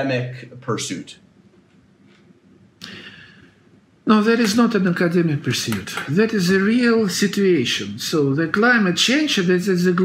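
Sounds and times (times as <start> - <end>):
man's sharp intake of breath: 2.8 - 3.6.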